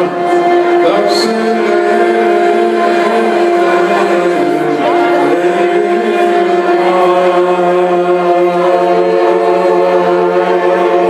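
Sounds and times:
folk band with clarinet: 0:00.0 - 0:11.0.

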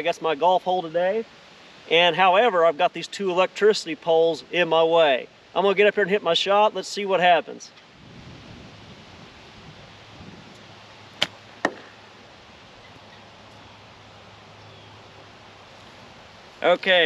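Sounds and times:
ball cracking against wooden pole: 0:11.2 - 0:12.0
golf club striking ball: 0:11.2 - 0:12.1.

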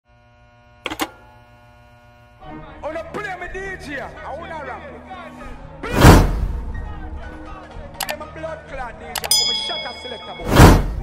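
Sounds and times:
electrical buzz and hum: 0:00.1 - 0:03.8.

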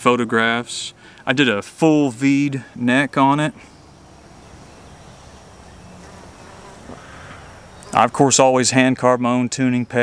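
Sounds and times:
insect buzzing: 0:03.8 - 0:08.1.

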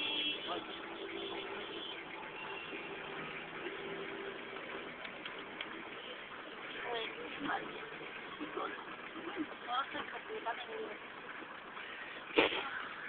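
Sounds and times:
vehicle engine and road noise: 0:00.0 - 0:13.0.

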